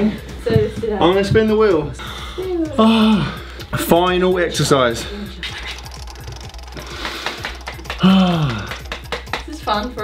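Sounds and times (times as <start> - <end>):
app wheel ticking rapidly: 5.4 - 9.6.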